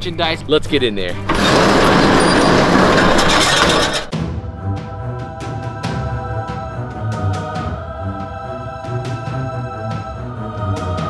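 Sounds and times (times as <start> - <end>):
background music: 0.0 - 11.0
metal roll-up door rattling: 1.1 - 4.1.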